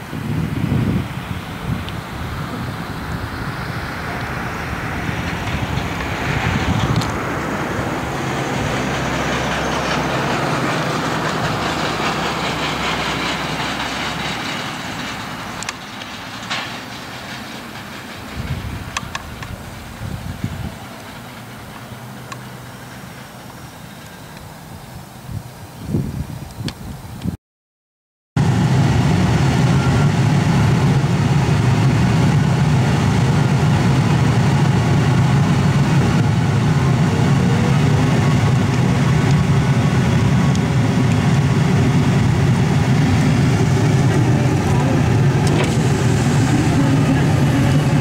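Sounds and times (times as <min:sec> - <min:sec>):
train wheels rumbling on rail: 0:00.0 - 0:26.8, 0:28.4 - 0:48.0.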